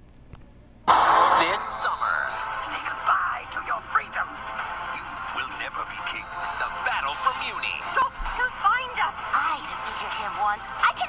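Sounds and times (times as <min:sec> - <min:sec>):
music with sweeping tones: 0:00.9 - 0:11.0.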